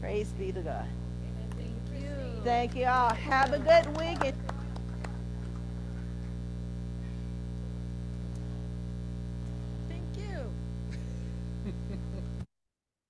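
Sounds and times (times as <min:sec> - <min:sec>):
electrical mains hum: 0:00.0 - 0:12.5.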